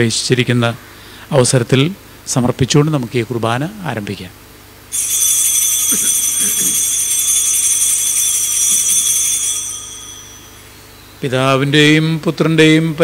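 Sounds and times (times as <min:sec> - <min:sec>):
small altar bells ringing: 0:04.9 - 0:11.8.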